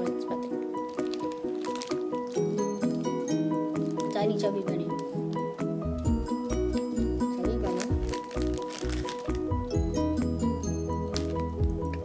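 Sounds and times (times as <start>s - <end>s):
background music with bass: 5.2s - 12.0s.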